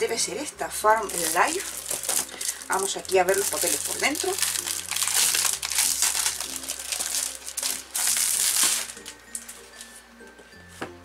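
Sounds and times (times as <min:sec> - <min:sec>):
cellophane wrapper crinkling: 0:01.0 - 0:09.9.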